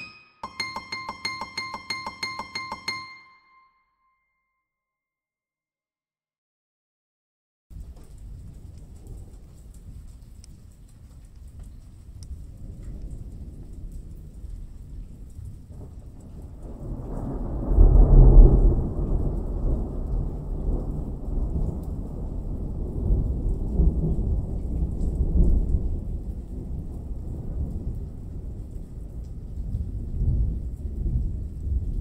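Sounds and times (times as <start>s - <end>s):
steady rain: 7.7s - 32.0s
thunder rolling: 12.3s - 32.0s.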